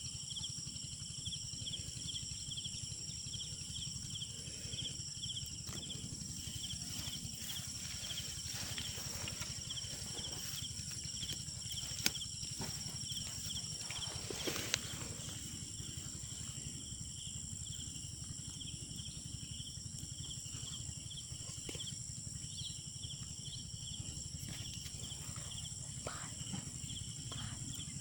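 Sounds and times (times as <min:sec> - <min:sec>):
high-pitched insect drone: 0:00.0 - 0:28.0
insects chirping: 0:00.0 - 0:28.0.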